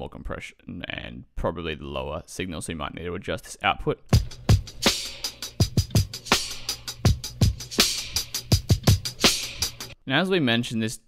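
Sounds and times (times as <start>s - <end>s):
electronic drum loop: 4.1s - 10.0s.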